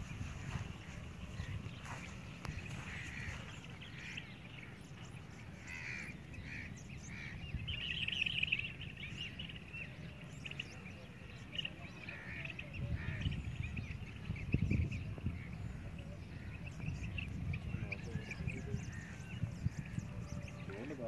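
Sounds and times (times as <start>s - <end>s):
steady low rumble: 0.0s - 5.7s
small birds chirping: 0.0s - 21.0s.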